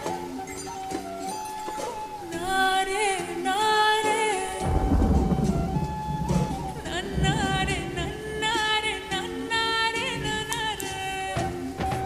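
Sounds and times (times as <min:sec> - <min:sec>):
rain: 0:00.0 - 0:12.0
thunder rumble: 0:04.6 - 0:11.1.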